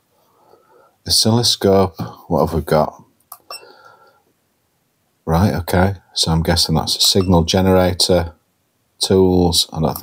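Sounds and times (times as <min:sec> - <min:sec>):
short high beep: 0:07.2 - 0:07.4.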